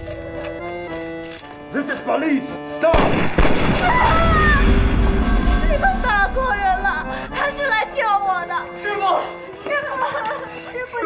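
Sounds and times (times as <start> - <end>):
pistol shots: 3.0 - 4.2
heavy low rumble: 4.2 - 8.0.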